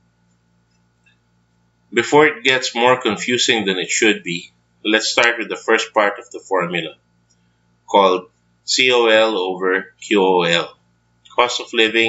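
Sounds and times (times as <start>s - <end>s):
low hum of room tone: 0.0s - 12.0s
narrator speaking: 2.0s - 6.9s, 7.9s - 10.7s, 11.3s - 12.0s.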